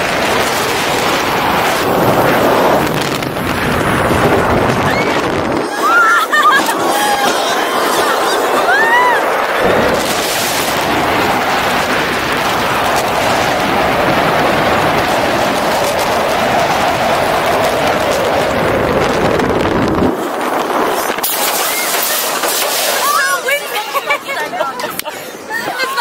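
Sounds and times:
wind buffeting microphone: 0.0 - 23.6
roller coaster wheels roaring: 0.0 - 26.0.

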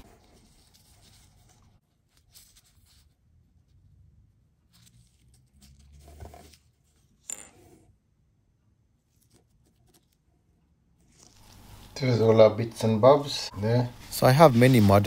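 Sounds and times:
soft handling rustle: 0.0 - 3.7, 11.0 - 15.0.

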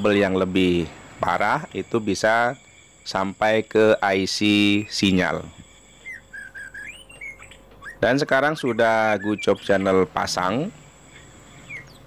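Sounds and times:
faint bird calls: 4.5 - 12.0.

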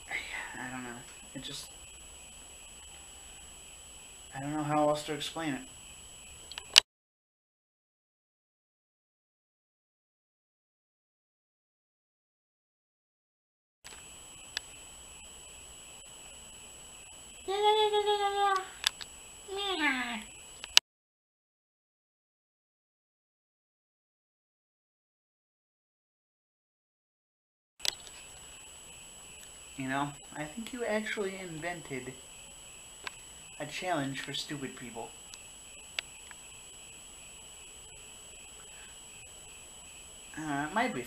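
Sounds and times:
steady hiss: 0.0 - 6.8, 13.9 - 20.8, 27.8 - 41.0
sharp click: 6.5 - 6.9, 18.8 - 19.1, 20.6 - 20.8, 27.8 - 28.2
faint high-pitched tones: 28.0 - 41.0.

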